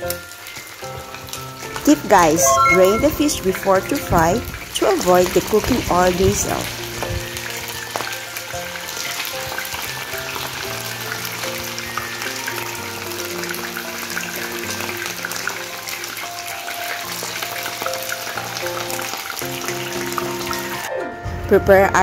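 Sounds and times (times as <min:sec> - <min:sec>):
fish frying in oil: 0:00.0 - 0:20.9
background music: 0:00.0 - 0:22.0.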